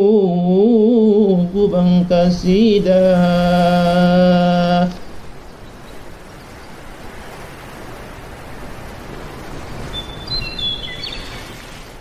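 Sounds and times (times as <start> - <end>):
steady background hiss: 0.0 - 12.0
high bird-like chirps: 9.9 - 11.7.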